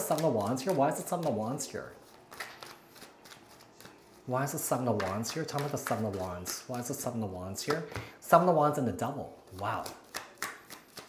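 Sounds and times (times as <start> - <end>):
cards shuffling: 0.0 - 8.0, 9.4 - 11.0.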